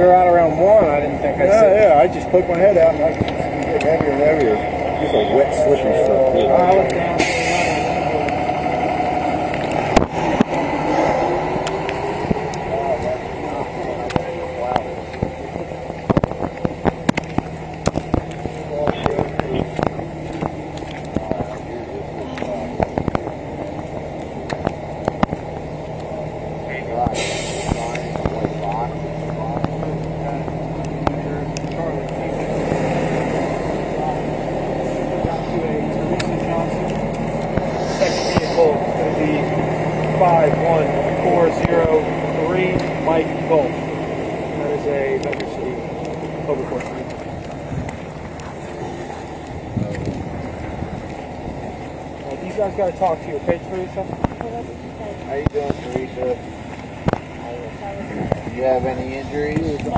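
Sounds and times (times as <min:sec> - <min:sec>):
indistinct voices: 0:00.0 - 0:59.9
vehicle engine hum: 0:00.0 - 0:59.9
short bursts of hiss: 0:37.7 - 0:38.6.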